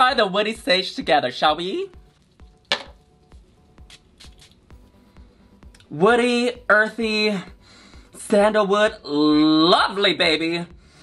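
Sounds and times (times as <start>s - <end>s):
faint background music: 0.0s - 11.0s
perfume spray pump spraying: 3.8s - 4.6s.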